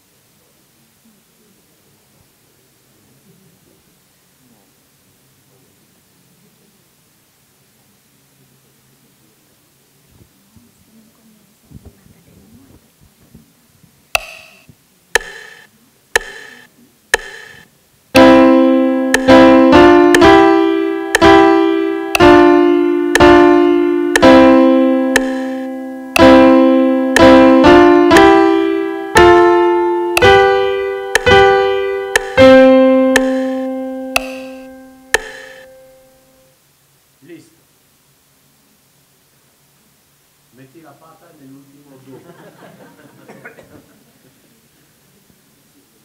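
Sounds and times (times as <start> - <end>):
metronome clicks: 14.2 - 17.6, 18.2 - 36.3
bass line: 18.2 - 36.0
piano melody: 18.2 - 36.4.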